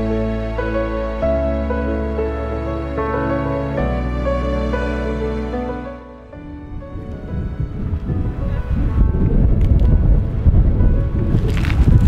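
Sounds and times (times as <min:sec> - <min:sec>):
background music: 0:00.0 - 0:12.0
wind buffeting microphone: 0:06.4 - 0:12.0.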